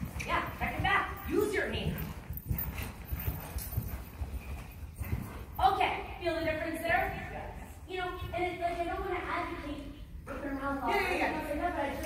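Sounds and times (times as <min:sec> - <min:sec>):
horse hooves thudding on sand: 0:00.0 - 0:09.6.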